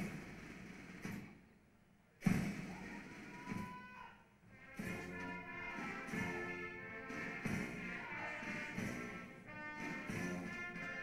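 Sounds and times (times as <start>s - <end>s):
military band playing a march: 0.0s - 1.0s, 4.6s - 11.0s
brass: 4.5s - 11.0s.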